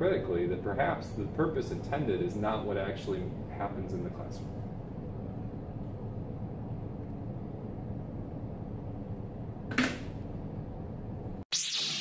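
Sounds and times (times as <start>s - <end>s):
low room hum: 0.0s - 11.4s.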